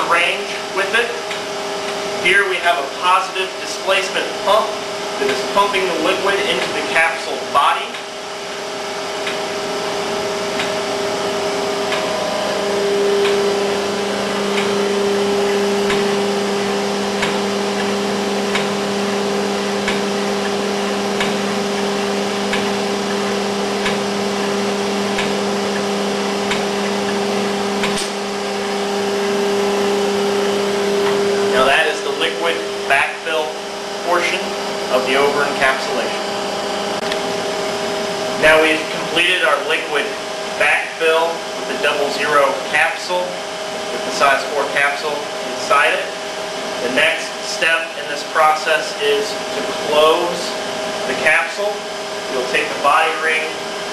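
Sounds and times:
machine electric hum: 0:00.0 - 0:53.9
person speaking: 0:31.4 - 0:36.3, 0:38.4 - 0:43.2.

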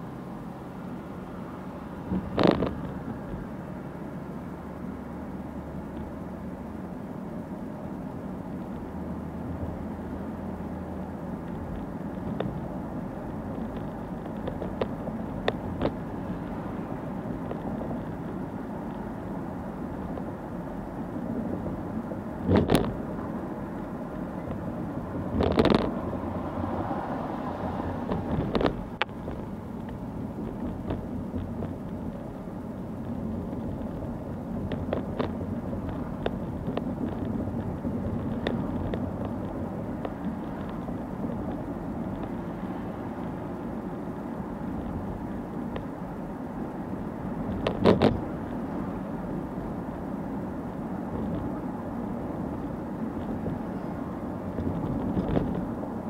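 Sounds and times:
road and engine noise in car: 0:00.0 - 0:56.0
car interior knocks and creaks: 0:02.0 - 0:03.3, 0:22.4 - 0:23.2, 0:24.4 - 0:26.0, 0:28.0 - 0:42.4, 0:47.4 - 0:48.4, 0:54.5 - 0:56.0.

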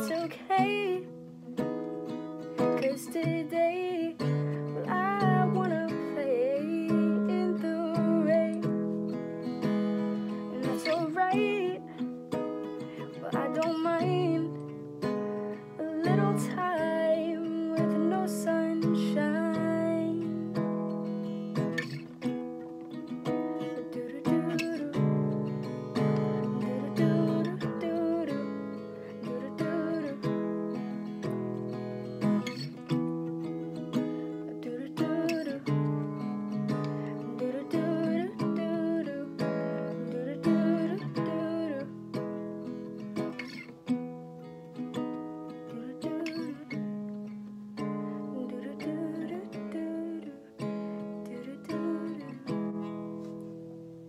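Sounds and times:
person singing wordlessly: 0:00.0 - 0:01.2, 0:02.6 - 0:08.8, 0:10.4 - 0:12.2, 0:12.9 - 0:14.7, 0:15.8 - 0:20.6, 0:23.6 - 0:30.4, 0:34.5 - 0:36.1, 0:37.0 - 0:42.1, 0:45.6 - 0:46.9, 0:48.2 - 0:50.6, 0:51.2 - 0:52.7
acoustic guitar strumming: 0:00.0 - 0:54.0.

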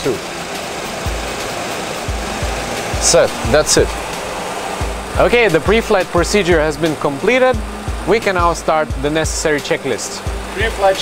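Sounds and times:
rushing air and fan noise: 0:00.0 - 0:11.0.

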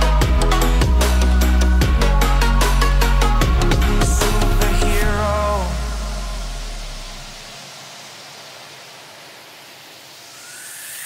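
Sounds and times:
deep sub-bass note: 0:00.0 - 0:07.4
synthesized noise sweep: 0:00.0 - 0:11.0.

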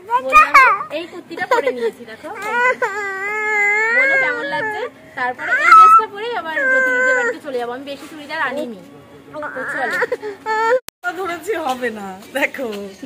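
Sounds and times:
young child crying: 0:02.4 - 0:07.4.

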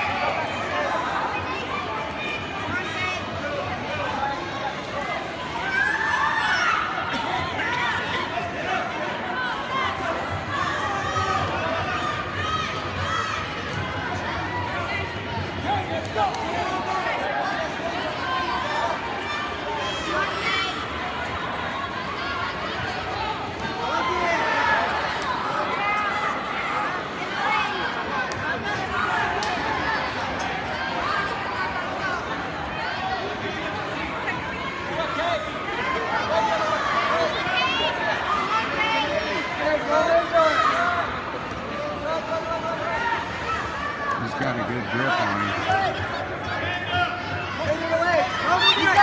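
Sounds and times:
crowd voices talking and calling out: 0:00.0 - 0:49.0.

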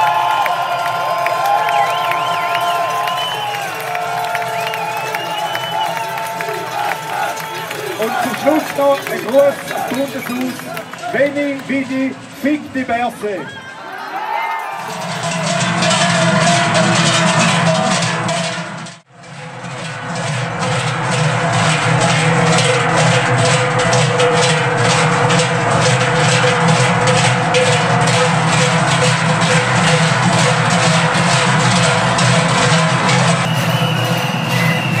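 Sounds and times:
cowbells clanging: 0:00.0 - 0:18.5, 0:20.6 - 0:35.0.

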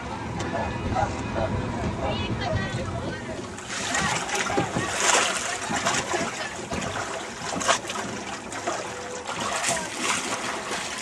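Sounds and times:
water splashing and trickling: 0:02.6 - 0:11.0.

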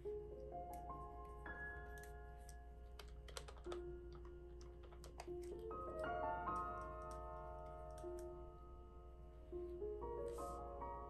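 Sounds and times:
calculator keys clicking: 0:01.9 - 0:07.2, 0:07.9 - 0:08.3.

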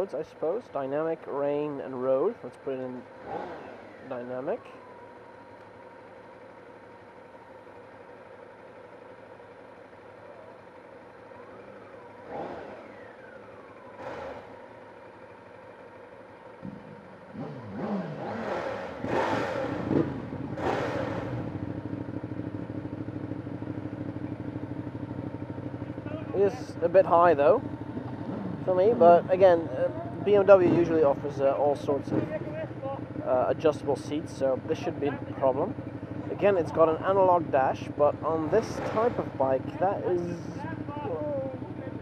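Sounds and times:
motorcycle engines idling and revving: 0:00.0 - 0:42.0.

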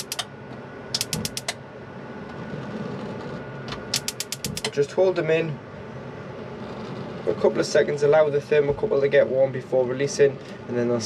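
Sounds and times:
gas hob igniter clicking: 0:00.0 - 0:00.3, 0:01.0 - 0:01.6, 0:03.9 - 0:04.8.

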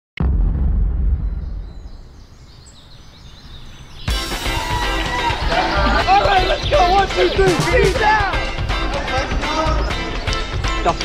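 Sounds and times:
deep boom: 0:00.2 - 0:02.8.

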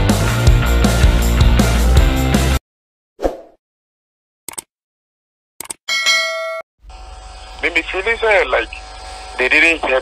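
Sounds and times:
bright bell ding: 0:05.9 - 0:06.6.

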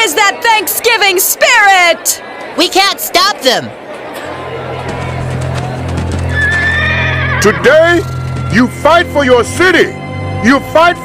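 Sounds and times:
horse whinnying: 0:06.3 - 0:08.5.

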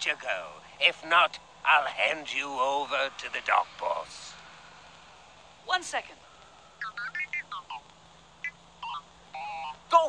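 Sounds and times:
low steady hum: 0:00.0 - 0:10.0
high-pitched cartoon gibberish chatter: 0:06.8 - 0:10.0.

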